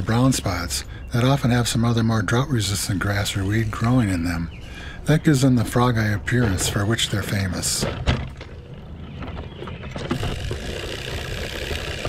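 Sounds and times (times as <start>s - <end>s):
spreader whirring and rattling: 9.2s - 12.0s.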